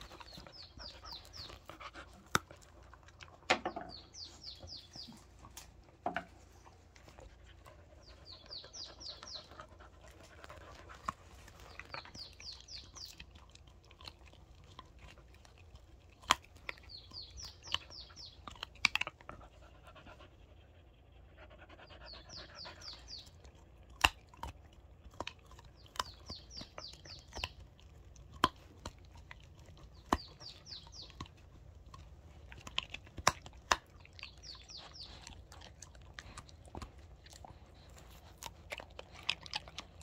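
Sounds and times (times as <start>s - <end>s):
teeth clicking: 0.0s - 20.0s, 22.0s - 40.0s
dog chewing meat: 0.0s - 20.2s, 22.0s - 40.0s
bird singing: 3.6s - 5.2s, 8.0s - 9.6s, 11.6s - 13.2s, 16.7s - 18.4s, 25.8s - 27.6s, 30.0s - 31.3s, 34.2s - 35.3s.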